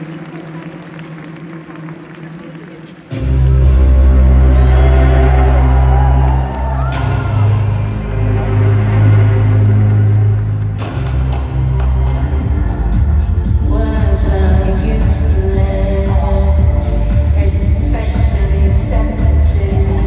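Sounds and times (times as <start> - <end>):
amplified concert music: 0.0 - 20.0
deep synth bass notes: 3.1 - 20.0.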